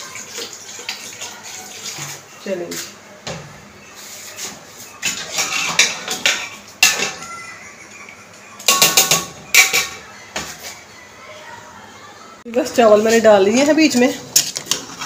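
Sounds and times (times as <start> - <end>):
metal spoon scraping metal pot: 5.0 - 7.1, 13.5 - 15.0.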